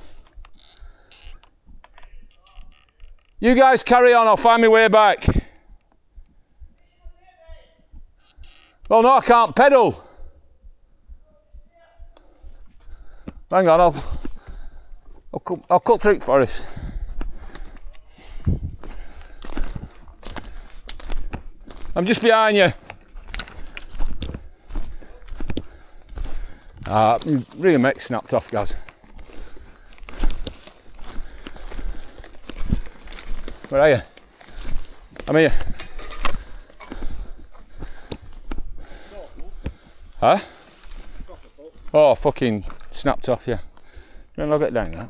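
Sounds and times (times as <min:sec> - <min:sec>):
footsteps on forest floor: 0:12.2 - 0:43.0, 0:43.6 - 0:45.0
wind rumble on microphone: 0:18.4 - 0:18.9
twigs snapping underfoot: 0:18.8 - 0:22.0, 0:22.8 - 0:38.6.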